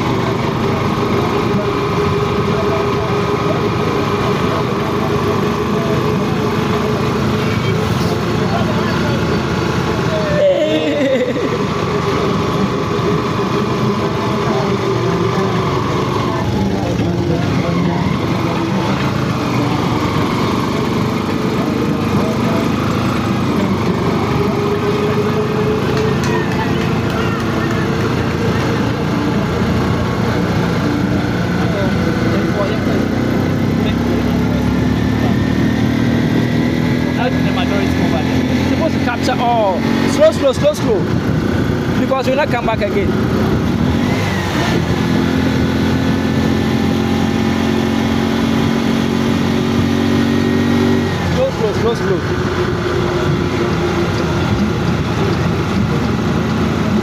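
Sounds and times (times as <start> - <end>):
indistinct voices: 0.0 - 50.3, 50.9 - 57.0
vehicle engine running: 0.0 - 57.0.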